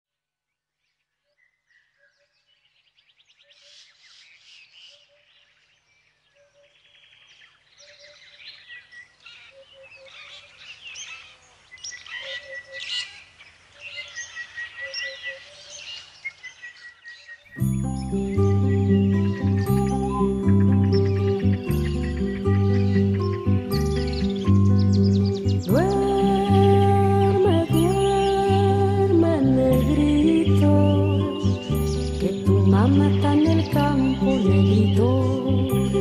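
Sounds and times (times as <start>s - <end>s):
birds chirping and trilling: 0.8s - 36.0s.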